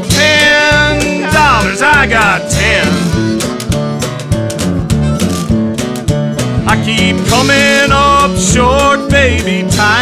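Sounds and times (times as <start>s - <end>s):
bass line: 0.0s - 10.0s
guitar: 0.0s - 10.0s
steady drum beat: 0.0s - 10.0s.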